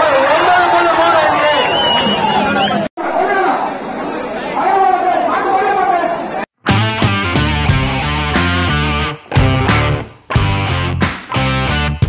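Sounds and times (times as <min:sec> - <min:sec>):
crowd of men shouting: 0:00.0 - 0:06.4.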